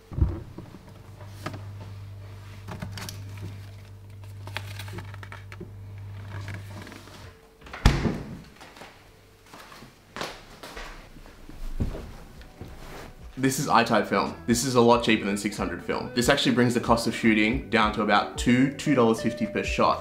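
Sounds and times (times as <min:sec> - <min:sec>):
fridge door shutting: 0:00.0 - 0:01.7, 0:07.6 - 0:08.6
refrigerator humming: 0:00.0 - 0:09.5.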